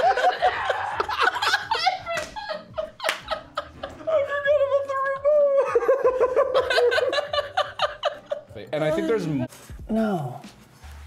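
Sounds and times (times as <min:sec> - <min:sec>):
men laughing hard: 0:00.0 - 0:04.1, 0:05.6 - 0:08.6.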